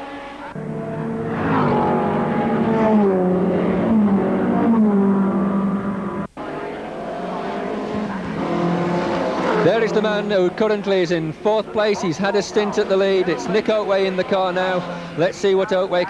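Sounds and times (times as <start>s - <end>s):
racing car engine: 0.0s - 16.0s.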